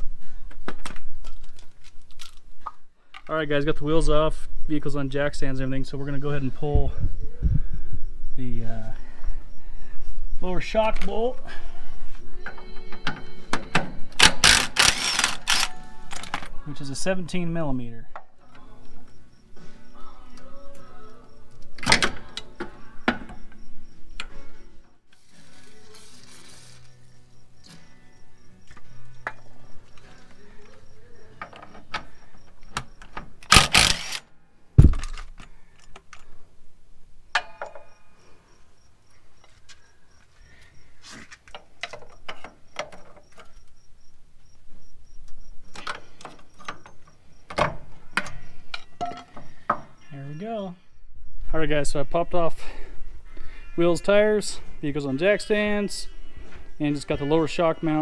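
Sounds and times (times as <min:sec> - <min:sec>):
background music: 0:11.9 - 0:31.5
cordless power tool whirring: 0:14.3 - 0:15.7, 0:33.5 - 0:34.2
low thud: 0:34.8 - 0:35.1.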